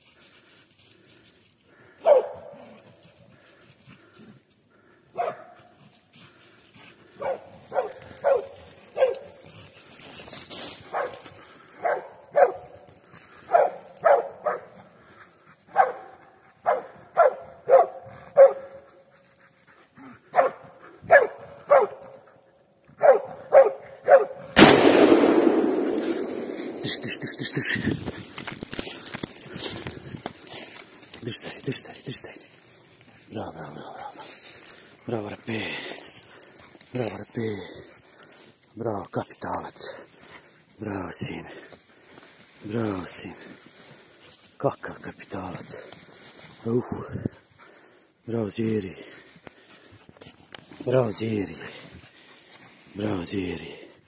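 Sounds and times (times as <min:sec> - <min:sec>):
dog barking: 0:02.0 - 0:02.7, 0:05.1 - 0:05.8, 0:07.2 - 0:09.4, 0:10.9 - 0:11.2, 0:11.8 - 0:12.8, 0:13.4 - 0:14.8, 0:15.7 - 0:18.9, 0:20.3 - 0:22.3, 0:23.0 - 0:24.6.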